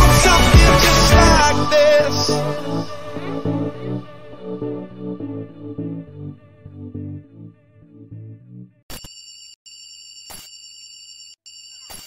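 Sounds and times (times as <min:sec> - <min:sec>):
electronic pop music: 0:00.0 - 0:06.2.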